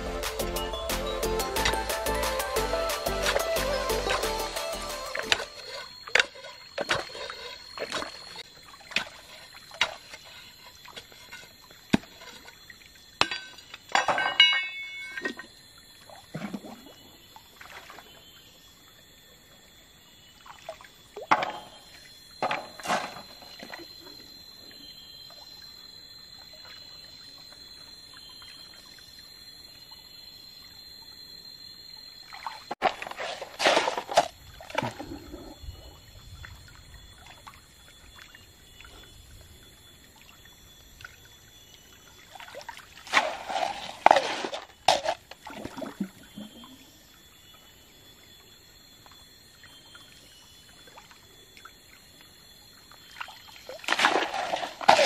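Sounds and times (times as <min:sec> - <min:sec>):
stream water sloshing and splashing: 0:05.0 - 0:19.1, 0:20.0 - 0:29.5, 0:32.0 - 0:55.0
iron bar knocking on stones: 0:13.2 - 0:15.2, 0:21.3 - 0:21.8, 0:22.4 - 0:23.2.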